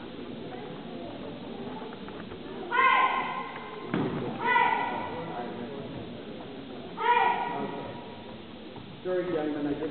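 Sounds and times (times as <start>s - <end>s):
low murmur of gym hall: 0.0s - 9.9s
child shouting karate kiai: 2.7s - 3.5s, 4.4s - 5.1s, 7.0s - 7.8s.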